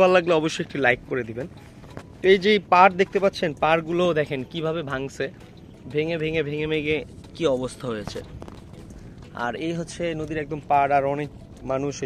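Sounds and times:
man talking: 0.0 - 1.5, 2.2 - 8.4, 9.3 - 12.0.

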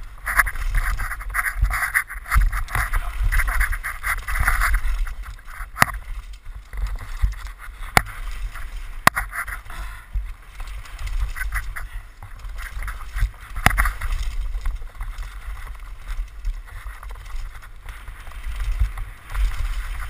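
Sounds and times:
bike clacking over bumps: 0.0 - 20.0
wind and tyre rumble: 0.0 - 20.0.

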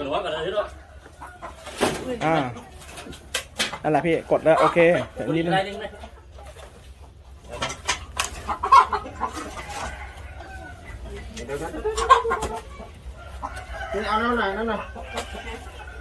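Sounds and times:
chickens clucking: 0.0 - 16.0.

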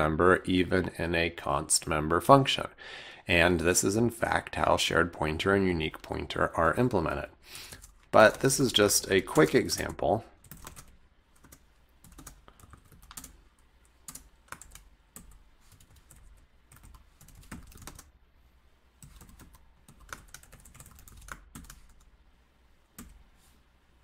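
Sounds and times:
keyboard typing clicks: 10.4 - 13.4, 19.0 - 22.1.

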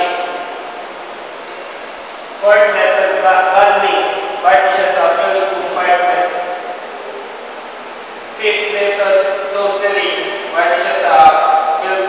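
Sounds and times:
man speaking: 2.4 - 6.6, 8.3 - 12.0.

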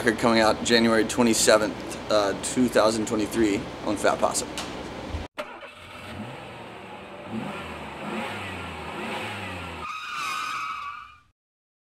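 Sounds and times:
vehicle engine accelerating: 5.6 - 9.8.

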